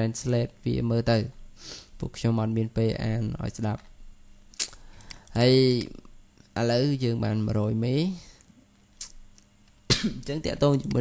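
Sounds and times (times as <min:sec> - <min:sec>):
person speaking: 0:00.0 - 0:01.4, 0:04.6 - 0:08.4, 0:10.1 - 0:11.0.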